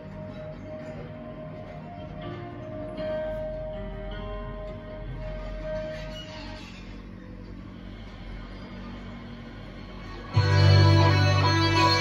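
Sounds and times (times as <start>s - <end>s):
low hum: 6.9s - 12.0s.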